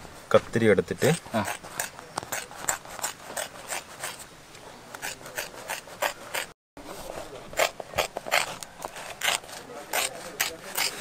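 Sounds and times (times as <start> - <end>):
scissors cutting thick rubber: 1.3 - 4.2, 4.9 - 6.5, 7.5 - 11.0.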